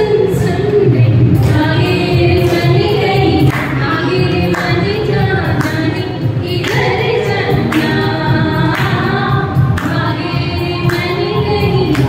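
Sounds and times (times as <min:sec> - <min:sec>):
musical accompaniment: 0:00.0 - 0:12.0
woman singing into microphone: 0:00.0 - 0:12.0.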